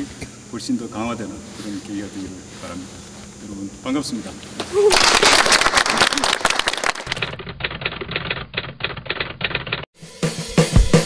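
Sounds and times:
typewriter key clacks: 7.1 - 9.8
music with guitar and drums: 10.0 - 11.0.

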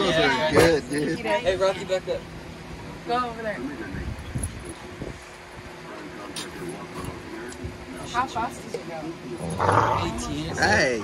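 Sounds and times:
faint low dog grumbles: 9.4 - 10.7.

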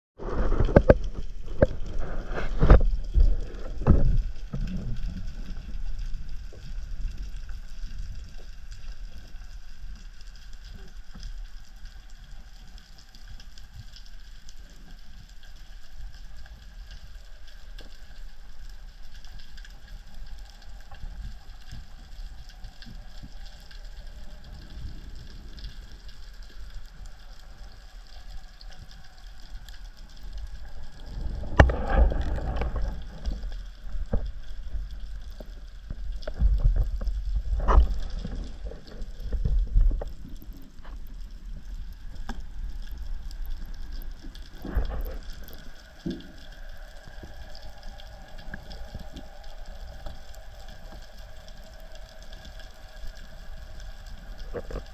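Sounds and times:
low rumble of water: 0.1 - 54.9
rushing water underwater: 0.2 - 54.9.

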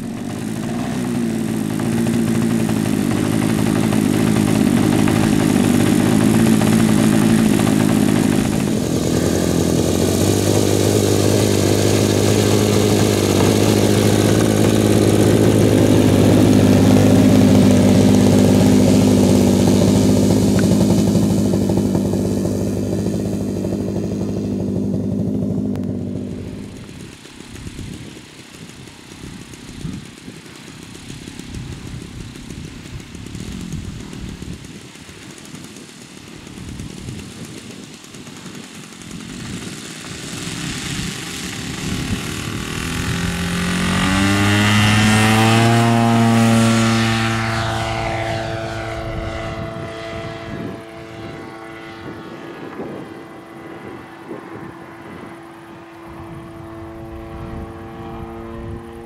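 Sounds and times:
model airplane engine running: 0.0 - 59.0.

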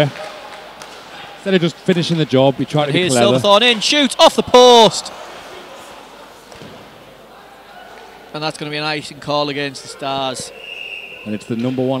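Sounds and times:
arena noise: 0.0 - 12.0.

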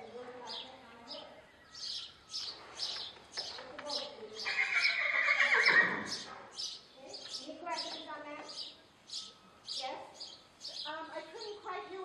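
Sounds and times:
horse neighing: 4.4 - 6.3.

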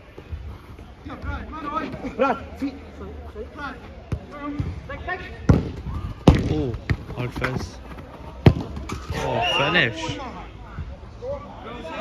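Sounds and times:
football being kicked: 5.4 - 9.2.

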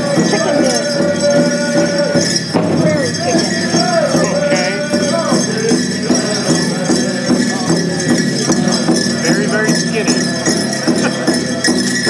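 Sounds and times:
bells jingling: 0.0 - 12.0
drum beating steadily: 0.0 - 12.0
high-pitched group singing: 0.0 - 12.0.

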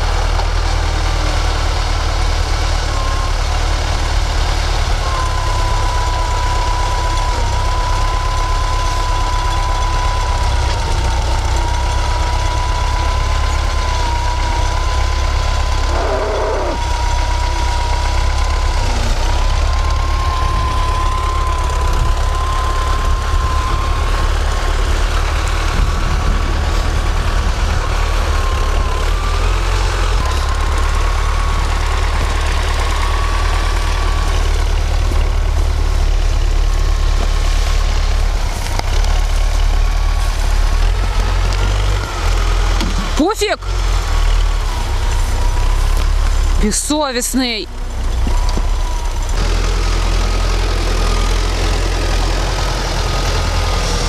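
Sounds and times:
tractor diesel engine idling: 0.0 - 54.0.

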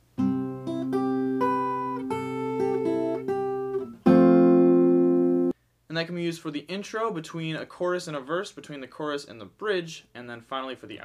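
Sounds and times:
acoustic guitar fingerpicking: 0.2 - 5.5
guitar chord ringing: 0.2 - 5.5.

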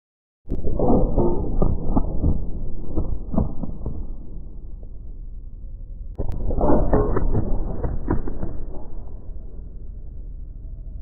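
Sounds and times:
muffled rumbling ambient music: 0.5 - 11.0.

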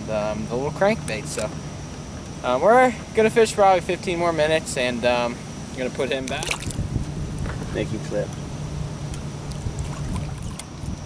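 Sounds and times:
water around boat: 0.0 - 11.0
wind: 0.0 - 11.0.

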